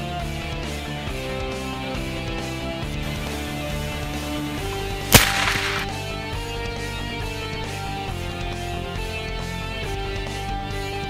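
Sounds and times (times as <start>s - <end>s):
rifle shot: 4.8s - 6.1s.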